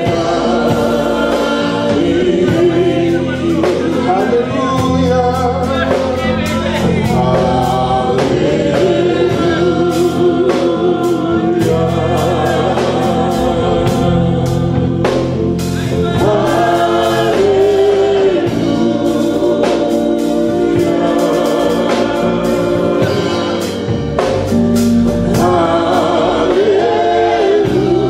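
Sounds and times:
sustained musical backing: 0.0 - 28.0
women singing gospel song: 0.0 - 28.0.

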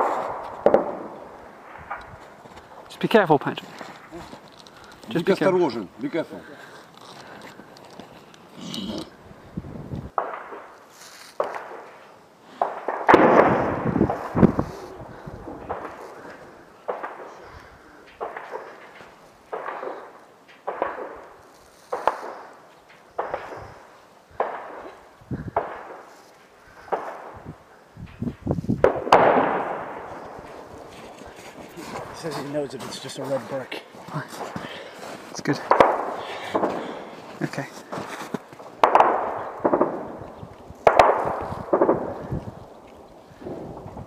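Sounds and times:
distant gunshots with echo: 0.0 - 2.0, 10.1 - 10.7, 12.6 - 14.4, 15.4 - 17.5, 18.2 - 18.9, 19.5 - 21.2, 21.9 - 26.1, 28.8 - 30.7, 35.6 - 37.1, 38.8 - 42.6.

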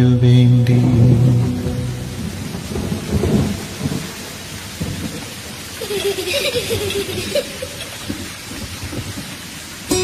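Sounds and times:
plucked string music: 0.0 - 3.6
low rumbles: 0.0 - 7.2
steady rain-like noise: 0.0 - 10.0.

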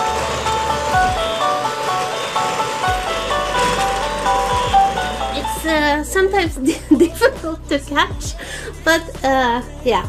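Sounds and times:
toy train running on track: 0.0 - 6.1
tinny electronic tune: 0.0 - 6.4.

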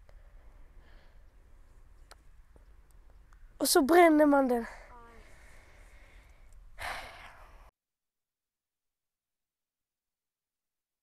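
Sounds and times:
breathy exhale: 0.1 - 1.3, 4.7 - 7.7.

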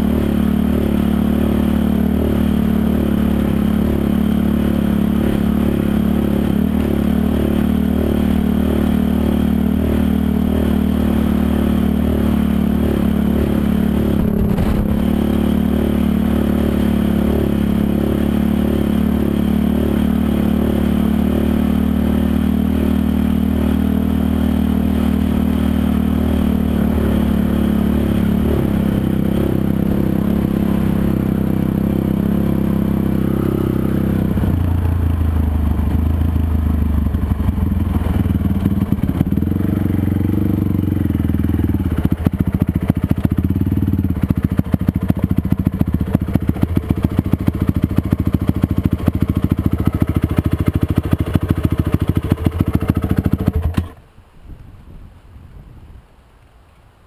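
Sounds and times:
quad engine running and idling: 0.0 - 54.2.

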